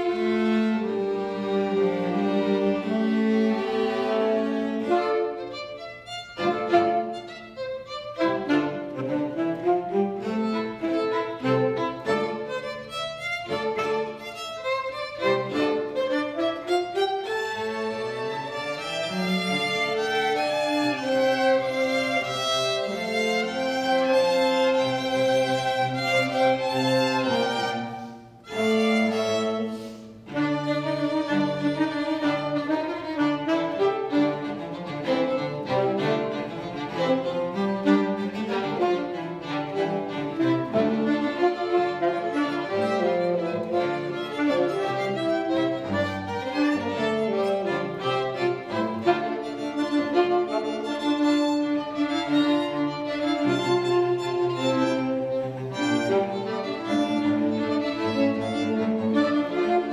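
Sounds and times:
cello: 0.0 - 59.9
saxophone: 0.0 - 59.9
violins: 0.0 - 59.9.

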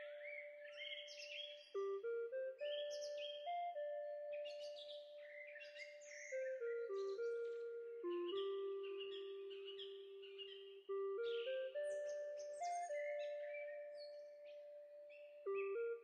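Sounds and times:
high chirps like birdsong: 0.0 - 16.0
instrumental background music: 0.0 - 16.0.

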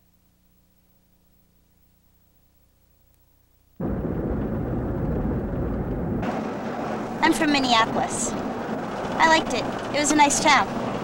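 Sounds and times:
traffic rumble: 3.8 - 11.0.

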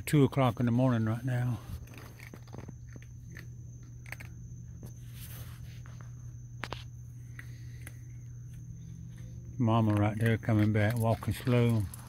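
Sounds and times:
steady low hum: 0.0 - 12.0
raccoon chewing food: 0.3 - 12.0.

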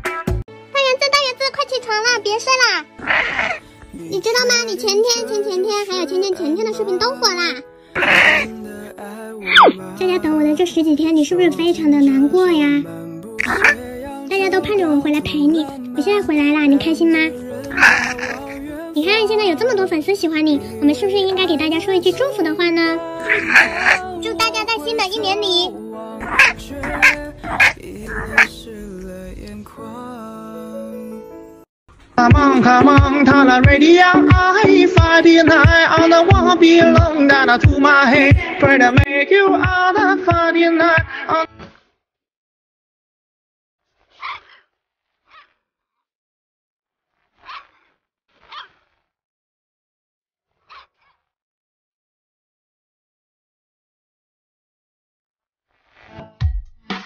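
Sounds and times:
background music: 0.0 - 41.6
dog barks: 3.0 - 3.6, 13.4 - 13.8, 23.2 - 24.0, 26.2 - 28.6, 47.4 - 47.8, 50.7 - 51.0.

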